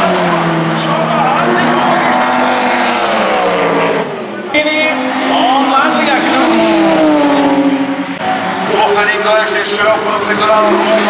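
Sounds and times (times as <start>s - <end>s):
racing car engines passing: 0.0s - 11.0s.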